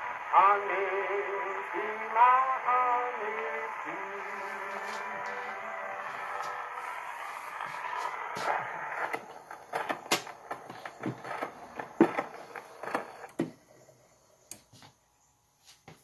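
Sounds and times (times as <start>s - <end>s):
singer with orchestra on phonograph: 0.0s - 13.3s.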